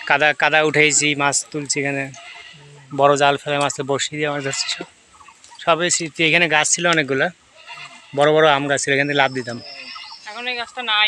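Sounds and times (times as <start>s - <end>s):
goats bleating: 1.8s - 3.1s, 4.2s - 5.0s, 7.5s - 8.8s, 9.4s - 10.6s.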